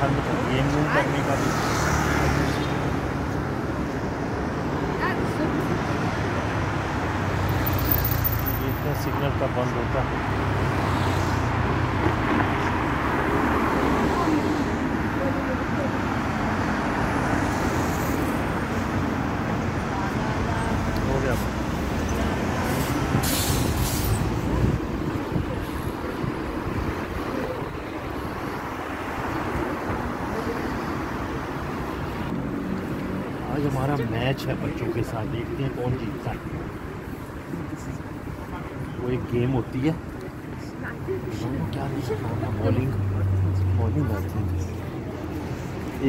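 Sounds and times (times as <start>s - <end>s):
traffic rumble: 0.0s - 46.0s.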